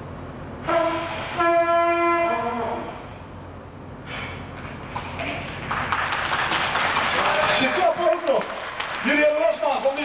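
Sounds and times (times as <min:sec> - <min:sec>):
trumpet held notes: 0:00.6 - 0:02.9.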